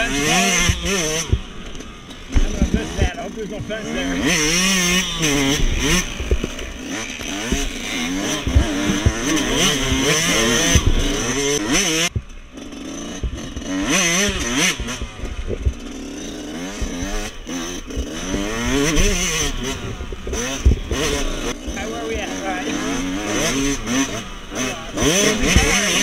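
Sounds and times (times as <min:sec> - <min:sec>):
dirt bike engine revving: 0:00.0 - 0:26.0
bike knocking over bumps: 0:02.2 - 0:03.8, 0:05.5 - 0:11.2.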